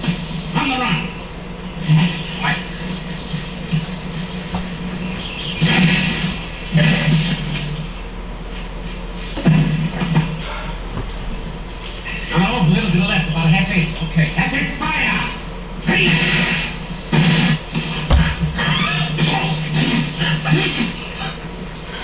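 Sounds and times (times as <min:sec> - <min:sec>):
indistinct television voices: 0:00.0 - 0:10.9
steady low hum: 0:00.0 - 0:22.0.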